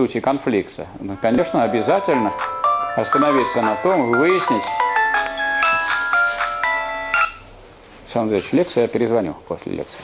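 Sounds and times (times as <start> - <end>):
mobile phone ringtone: 1.2 - 7.4.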